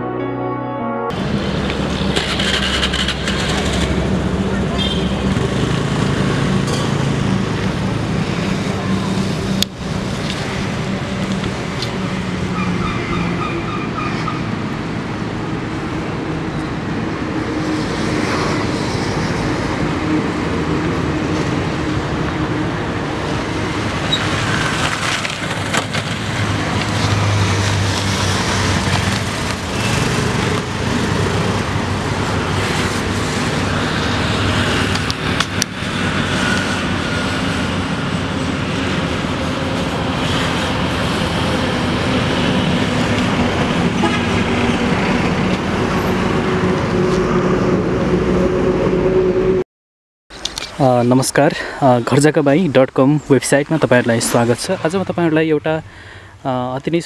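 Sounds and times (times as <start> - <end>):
road traffic passing: 1.1 - 49.6, 50.3 - 57.0.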